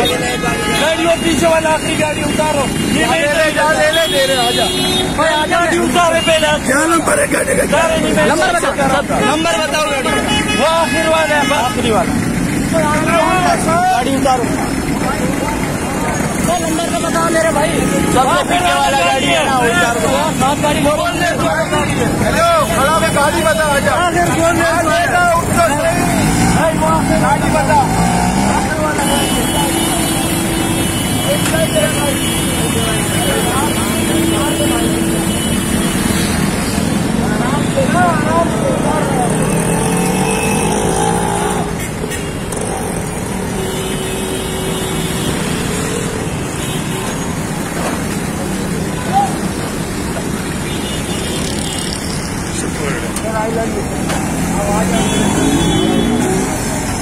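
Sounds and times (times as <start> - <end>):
people talking: 0.0 - 43.2, 51.5 - 57.0
crowd voices: 0.0 - 57.0
street traffic: 0.0 - 57.0.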